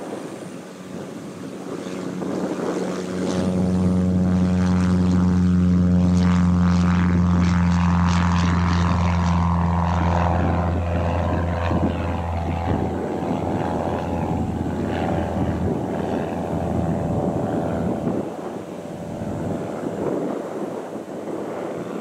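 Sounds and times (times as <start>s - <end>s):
aircraft engines droning: 0.0s - 22.0s
wind buffeting microphone: 0.0s - 22.0s.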